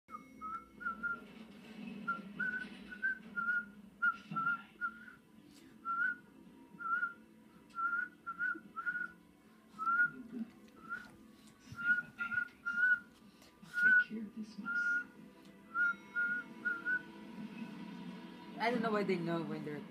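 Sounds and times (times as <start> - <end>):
person whistling chirpy notes: 7.8 - 9.2, 10.8 - 11.1, 11.7 - 13.1, 15.7 - 17.1.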